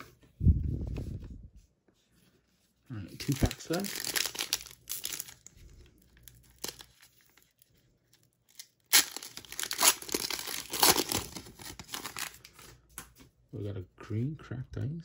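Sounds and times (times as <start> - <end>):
wrapper tearing and crinkling: 3.1 - 5.5, 6.1 - 12.6.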